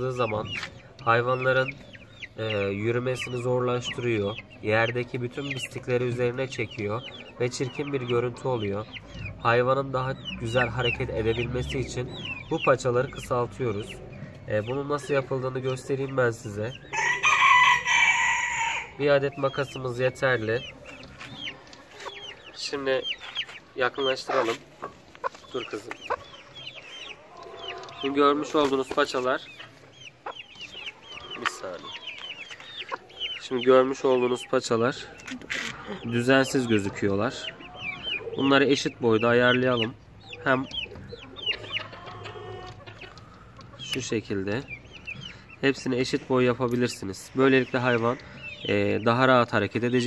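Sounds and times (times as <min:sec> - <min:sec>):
chickens peeping: 0:00.0 - 0:50.0
rooster crowing: 0:16.9 - 0:19.0.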